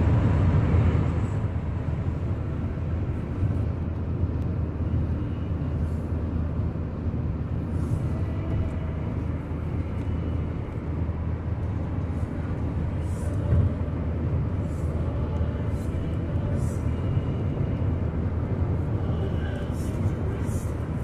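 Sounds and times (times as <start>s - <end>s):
engine rumble: 0.0s - 21.0s
road and tyre noise: 0.0s - 21.0s.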